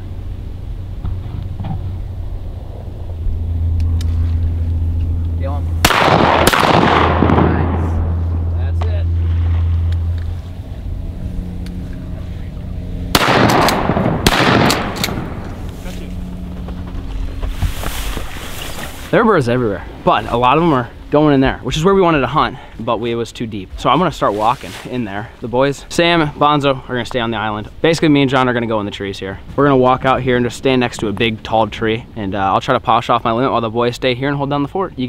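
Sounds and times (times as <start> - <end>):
low steady drone: 0.0 - 35.0
shotgun shots echoing: 5.8 - 8.5, 13.1 - 15.7.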